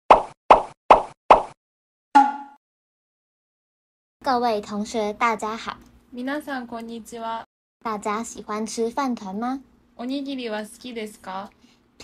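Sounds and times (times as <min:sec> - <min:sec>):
cartoon pop sound effect: 0:02.2 - 0:02.6.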